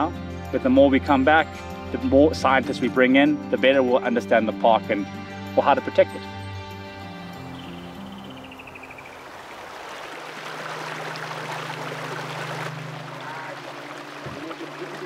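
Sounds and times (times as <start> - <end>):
background music: 0.0 - 9.2, 11.0 - 15.0
stream rushing over rocks: 9.1 - 15.0.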